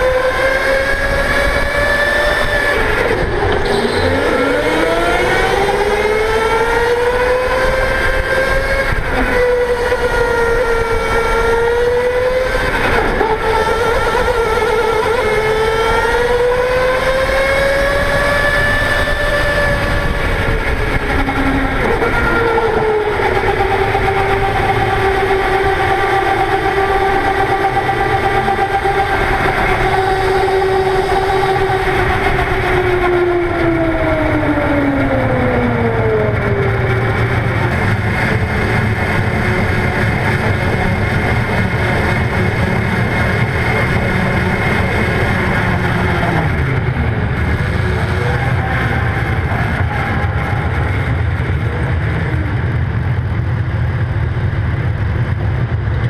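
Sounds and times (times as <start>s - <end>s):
go-kart motor whine: 0.0s - 56.0s
road noise: 0.0s - 56.0s.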